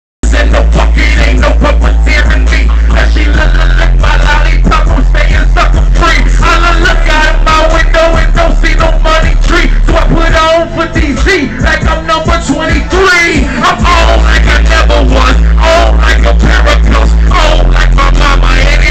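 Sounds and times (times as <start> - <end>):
heavy bass line: 0.2 - 18.9
rapping into microphone: 0.2 - 18.9.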